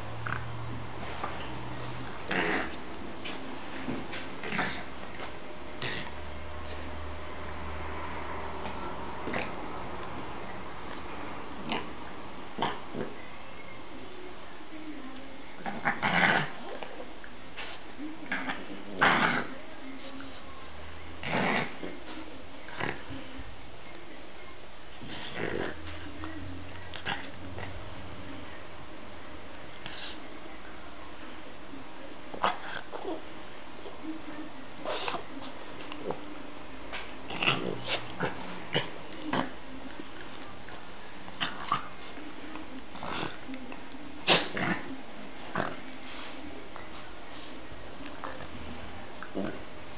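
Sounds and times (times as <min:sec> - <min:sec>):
dogs play-fighting noises: 0:00.0 - 0:13.2, 0:32.3 - 0:33.9, 0:34.7 - 0:49.9
dogs play-fighting vocalising: 0:32.3 - 0:33.3, 0:36.9 - 0:47.0.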